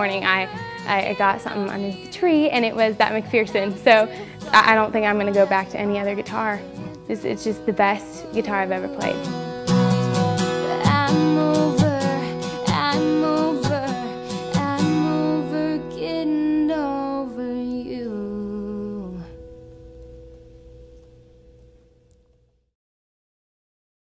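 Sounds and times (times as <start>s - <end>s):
strummed acoustic guitar: 0.0s - 17.6s
woman singing: 0.0s - 19.9s.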